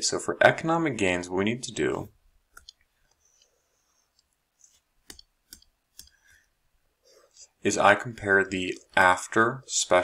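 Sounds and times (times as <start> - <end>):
faint mouse clicks: 2.5 - 6.4.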